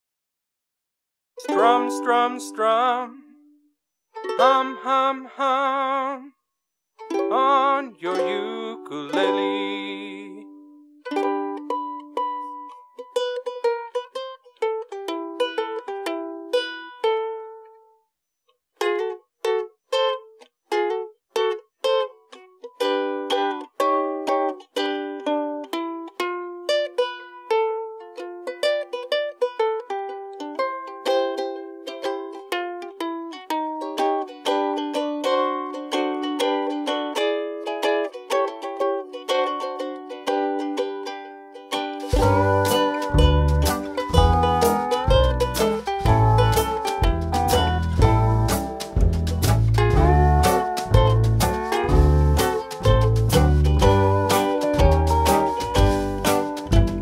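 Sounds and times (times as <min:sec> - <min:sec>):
ukulele picked notes: 0:01.4 - 0:03.6, 0:04.2 - 0:06.2, 0:07.0 - 0:17.8, 0:18.8 - 0:57.0.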